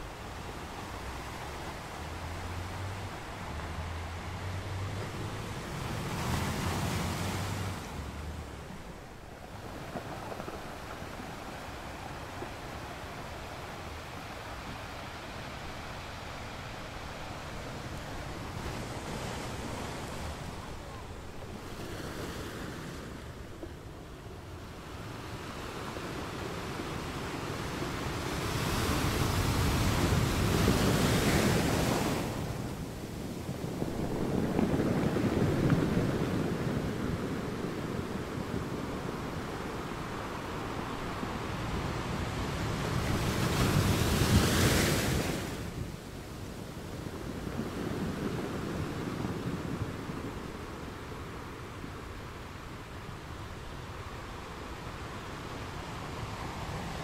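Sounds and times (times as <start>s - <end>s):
ocean surf breaking on pebbles: 0.0s - 23.5s, 24.8s - 57.0s.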